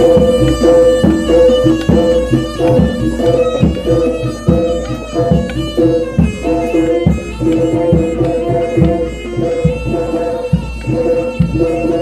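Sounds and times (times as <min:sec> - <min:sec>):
drum strokes: 0:00.0 - 0:12.0
reedy melody: 0:00.0 - 0:12.0.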